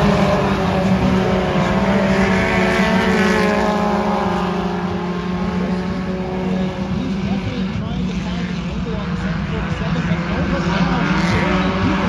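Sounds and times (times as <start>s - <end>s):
race car engines running: 0.0s - 12.0s.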